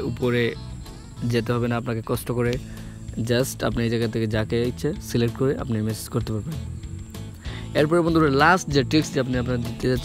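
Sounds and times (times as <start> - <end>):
person talking: 0.0 - 6.7, 7.5 - 10.0.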